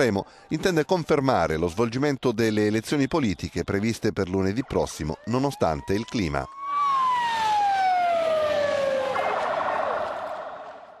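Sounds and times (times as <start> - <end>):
ambulance siren wailing: 4.6 - 11.0.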